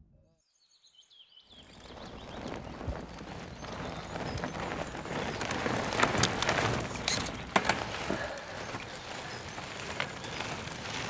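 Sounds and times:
mountain bike on dirt trail: 1.5s - 11.0s.

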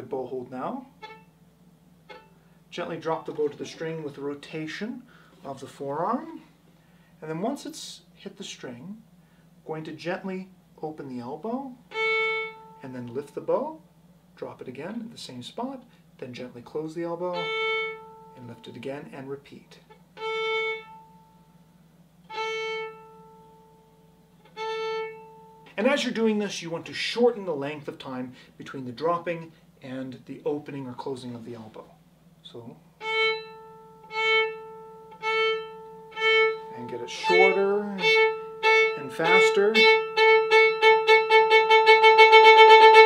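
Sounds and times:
violin spiccato notes: 0.8s - 1.3s, 2.1s - 4.4s, 17.3s - 18.8s, 33.0s - 43.0s.

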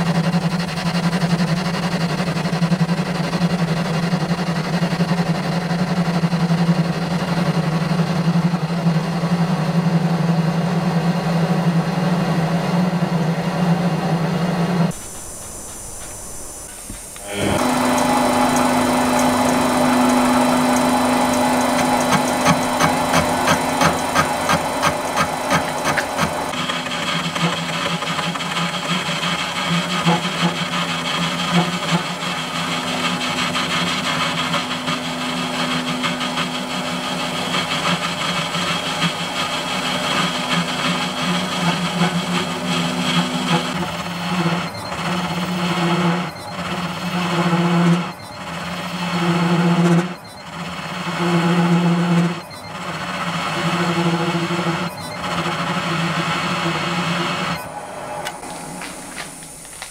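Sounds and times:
lathe motor hum: 0.0s - 59.9s
scratchy scrape of metal cutting: 14.9s - 59.4s.

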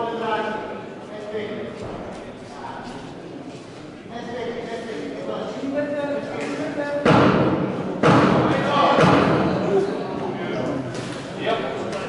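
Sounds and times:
boxing blows thudding: 7.0s - 9.6s.

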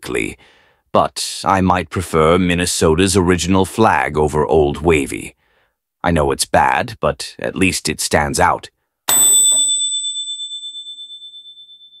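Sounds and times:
bright bell-like chime: 9.1s - 12.0s.

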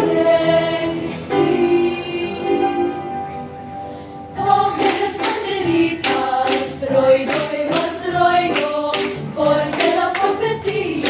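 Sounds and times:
children's choir singing: 0.0s - 3.4s, 4.3s - 11.0s.

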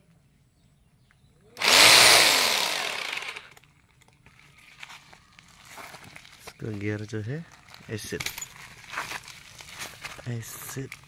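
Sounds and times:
rotary hammer drilling into stone: 1.6s - 3.6s.

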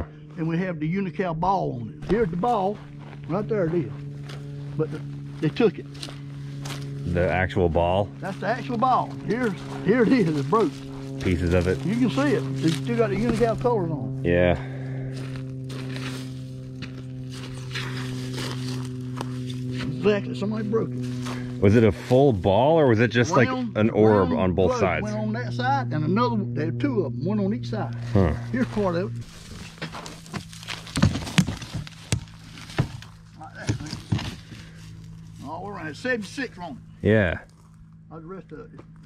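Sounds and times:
low hum: 0.0s - 39.0s
footsteps crunching in pine straw: 2.5s - 7.2s, 8.2s - 13.9s, 14.7s - 22.4s, 28.0s - 35.9s.

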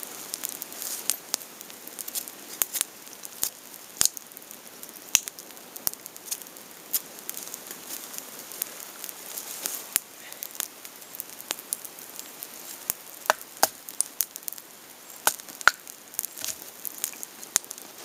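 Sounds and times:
faint hiss: 0.0s - 18.0s
raindrops pattering: 0.0s - 18.0s.

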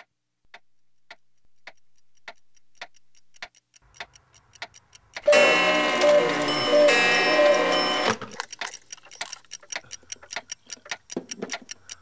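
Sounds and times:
analogue clock ticking: 0.0s - 12.0s.

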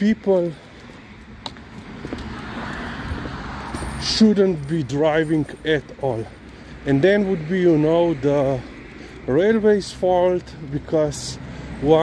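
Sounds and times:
road vehicle approaching: 0.0s - 12.0s.

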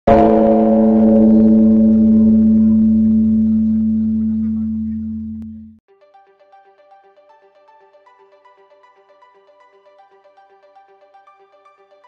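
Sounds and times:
gong stroke ringing: 0.1s - 5.7s.

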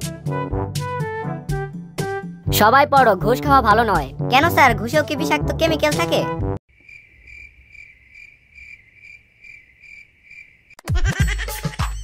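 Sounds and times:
cricket chirping: 6.7s - 10.8s.

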